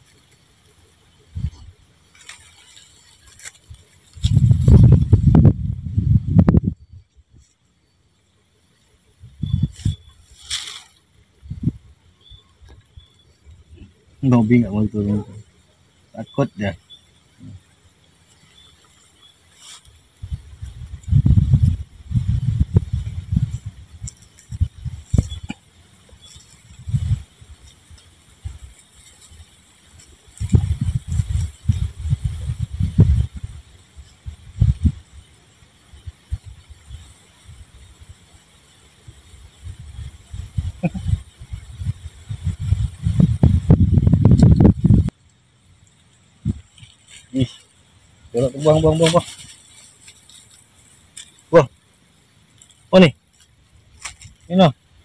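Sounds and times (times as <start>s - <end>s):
wind buffeting microphone: 3.7s - 7.4s, 9.1s - 10.5s, 11.2s - 15.4s, 20.0s - 38.3s, 39.0s - 45.2s.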